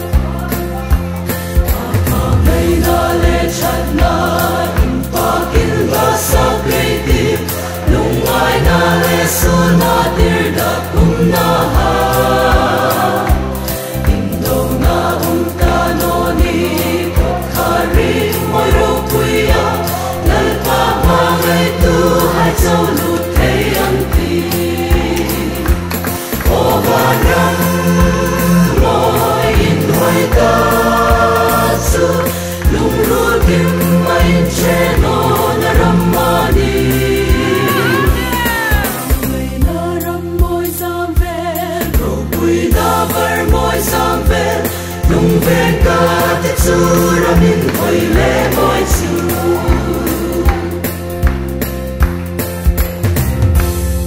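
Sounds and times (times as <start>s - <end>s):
choir singing in harmony: 0.0s - 52.1s
backing track with bass beat: 0.0s - 54.0s.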